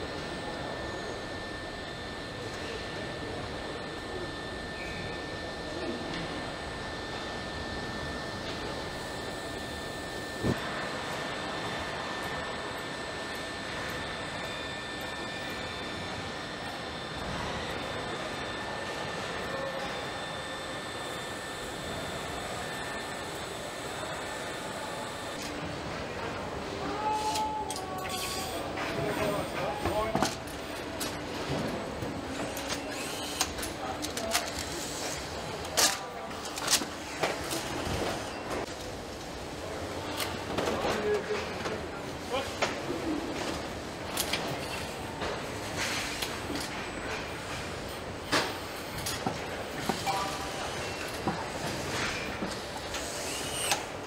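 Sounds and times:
faint high whines: 0.0s - 25.4s
factory machinery noise: 0.0s - 54.0s.

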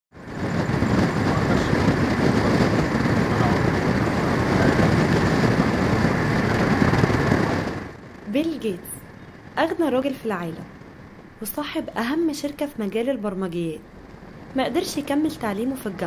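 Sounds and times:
vehicle road noise: 0.1s - 16.0s
wind buffeting microphone: 0.1s - 16.0s
wind rushing: 0.1s - 16.0s.

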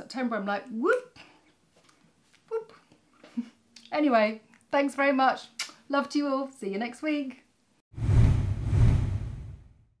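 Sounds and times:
low whoosh: 8.0s - 9.9s.

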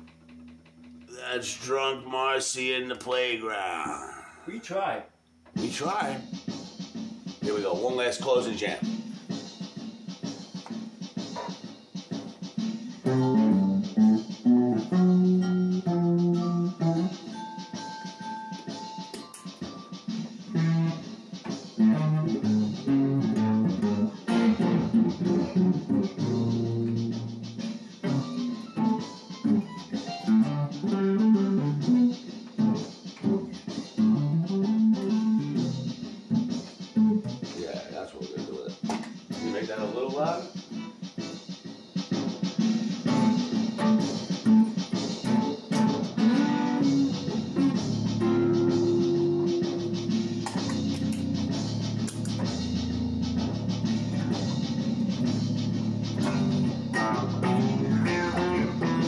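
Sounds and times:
electric guitar jamming: 12.6s - 17.8s, 18.6s - 37.6s, 42.1s - 59.0s.

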